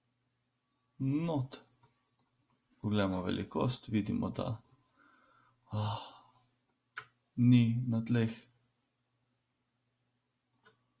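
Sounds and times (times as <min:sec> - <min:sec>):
man sighing: 0:05.7 - 0:06.3.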